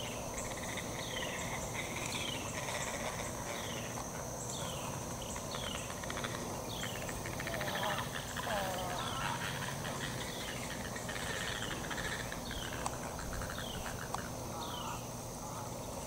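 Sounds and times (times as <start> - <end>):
rapid bird chattering: 0.0 - 15.1
steady high whine: 0.0 - 16.0.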